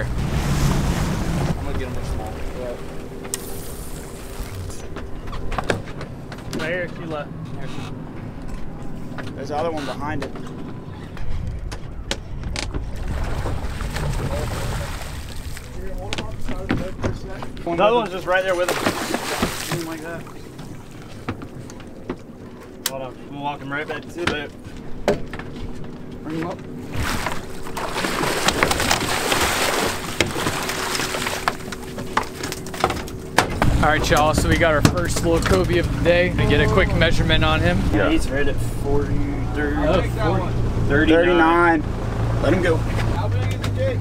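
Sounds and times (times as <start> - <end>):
water splashing at hull: 0.0 - 6.9, 11.6 - 22.9, 23.9 - 43.8
low rumbling wind: 0.0 - 44.0
steady low hum: 0.0 - 44.0.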